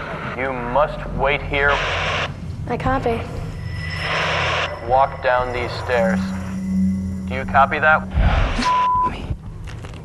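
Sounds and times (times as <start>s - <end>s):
low rumble: 0.0s - 10.0s
censor bleep: 3.6s - 9.2s.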